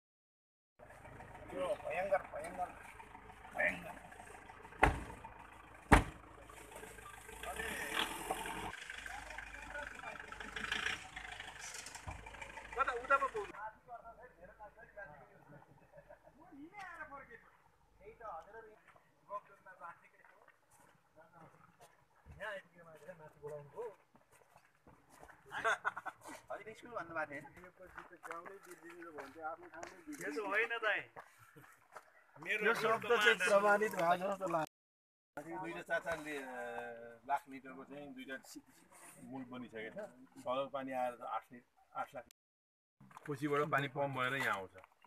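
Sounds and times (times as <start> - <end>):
men talking outdoors: 0.8 - 34.7, 35.4 - 42.4, 43.1 - 45.0
truck doors slamming: 4.8 - 5.2, 5.9 - 6.2
footsteps on gravel: 27.5 - 32.2.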